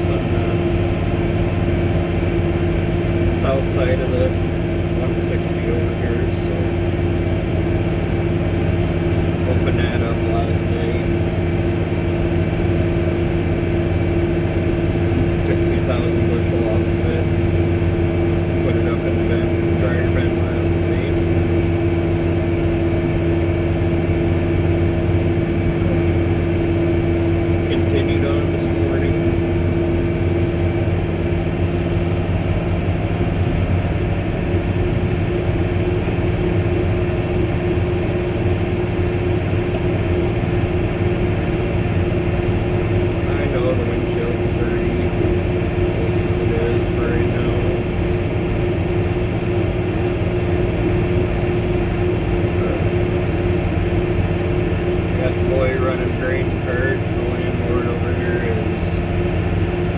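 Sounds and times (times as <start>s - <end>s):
truck engine drone from cab: 0.0s - 59.9s.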